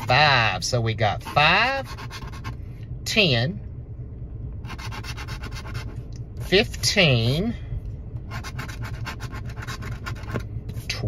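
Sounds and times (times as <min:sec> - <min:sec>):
coin scratching a ticket: 0:01.2 - 0:02.6, 0:08.3 - 0:10.4.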